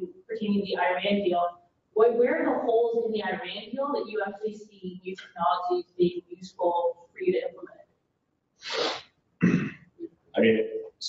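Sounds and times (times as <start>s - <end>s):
sharp exhaled burst: 8.6s - 9.6s.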